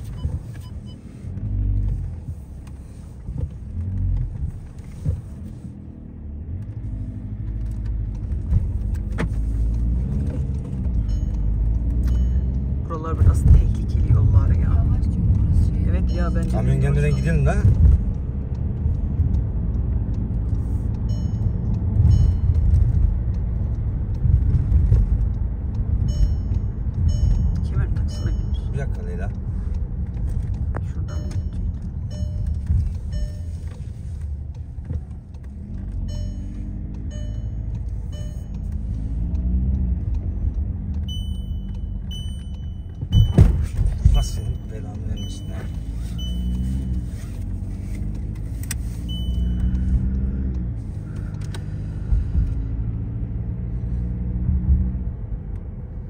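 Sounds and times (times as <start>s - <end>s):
road and engine rumble: 0.0s - 56.0s.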